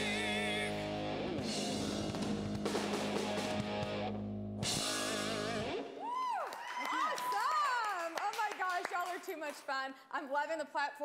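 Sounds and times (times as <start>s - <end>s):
live disco band playing: 0.0s - 5.9s
voices whooping: 5.9s - 7.9s.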